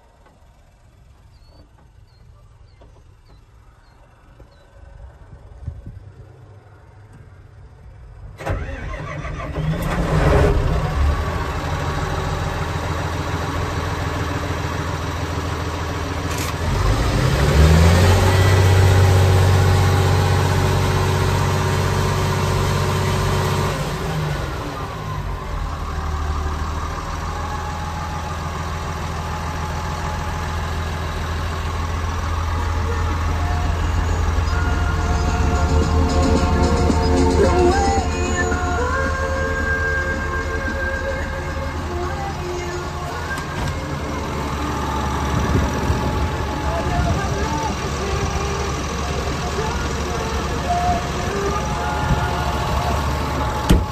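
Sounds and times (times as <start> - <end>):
diesel engine starting and idling: 0.0 - 53.9
engine revving: 8.4 - 53.9.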